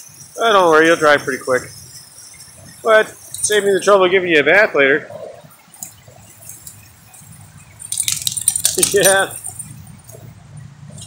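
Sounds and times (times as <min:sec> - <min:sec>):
dog collar tags jingling: 0:00.1 - 0:03.9, 0:05.7 - 0:10.3
small clicks: 0:07.8 - 0:10.3.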